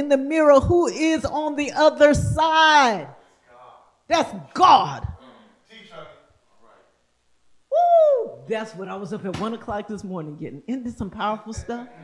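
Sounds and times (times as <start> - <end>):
woman exclaiming whoo: 7.7 - 8.5.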